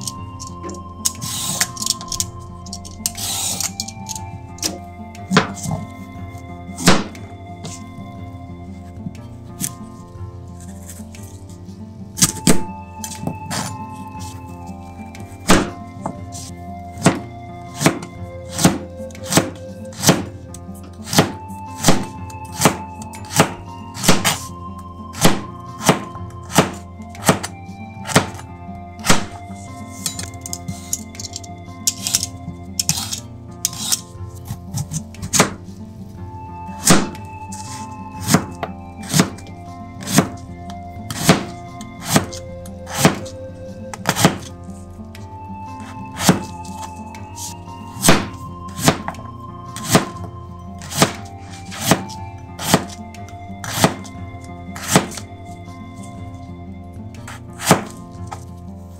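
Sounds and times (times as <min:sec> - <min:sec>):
background music: 0:00.0 - 0:58.9
knife chopping on cutting board: 0:17.8 - 0:20.3, 0:21.0 - 0:24.5, 0:25.2 - 0:27.5, 0:28.1 - 0:28.4, 0:34.8 - 0:35.6, 0:38.2 - 0:39.4, 0:40.0 - 0:40.4, 0:41.1 - 0:43.3, 0:44.0 - 0:44.5, 0:46.2 - 0:46.5, 0:48.0 - 0:49.2, 0:49.8 - 0:50.2, 0:50.8 - 0:53.0, 0:53.6 - 0:54.1, 0:54.8 - 0:55.2, 0:57.6 - 0:58.0.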